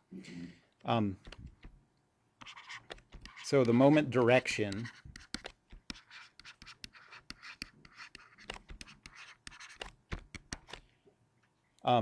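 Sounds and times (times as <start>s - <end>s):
stylus writing on tablet: 2.4s - 10.8s.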